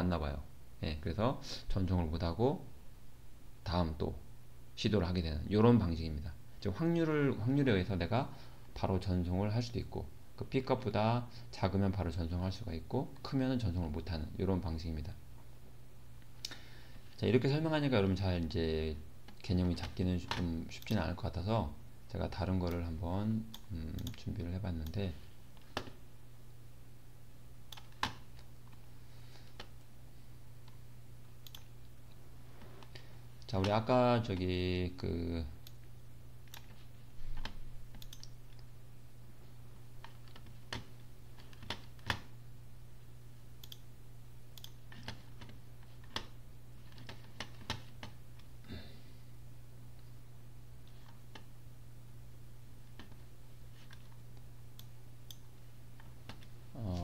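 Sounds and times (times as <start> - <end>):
steady low hum: 0.0 - 57.0
person speaking: 17.1 - 25.4, 32.8 - 35.8, 56.6 - 57.0
computer mouse clicks: 23.5 - 26.0, 27.7 - 28.8, 31.4 - 32.2, 35.6 - 38.7, 40.0 - 42.3, 43.6 - 43.9, 44.6 - 48.5, 53.8 - 57.0.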